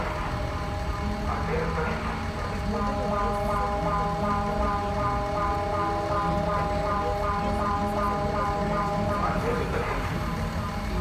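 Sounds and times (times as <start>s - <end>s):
alert siren from loudspeakers: 0.0s - 11.0s
low rumble of bus and traffic: 0.0s - 11.0s.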